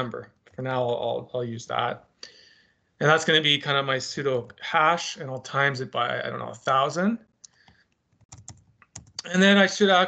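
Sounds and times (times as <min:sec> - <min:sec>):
computer keyboard keystrokes: 0:07.5 - 0:09.3.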